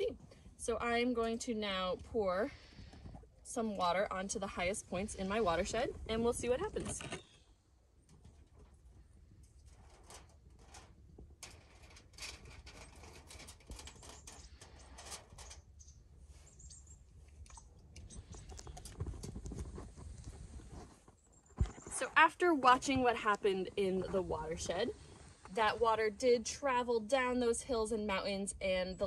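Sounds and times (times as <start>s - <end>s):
water pattering on foil: 9.7s - 15.6s.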